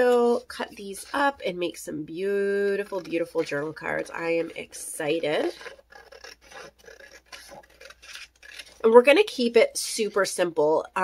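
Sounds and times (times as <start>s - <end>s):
scissors snipping paper: 5.2s - 8.9s.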